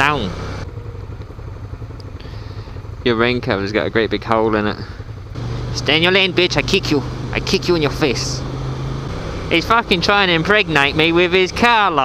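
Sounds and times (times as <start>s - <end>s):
motorcycle engines idling: 0.0s - 12.0s.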